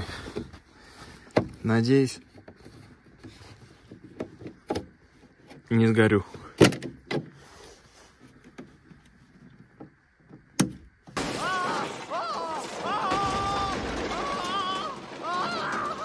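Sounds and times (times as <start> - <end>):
loud electric crackle: 11.2 - 16.0
man screaming: 11.2 - 16.0.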